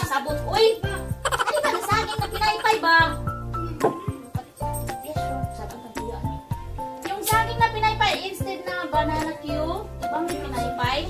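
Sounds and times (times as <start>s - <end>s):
light instrumental music: 0.0s - 11.0s.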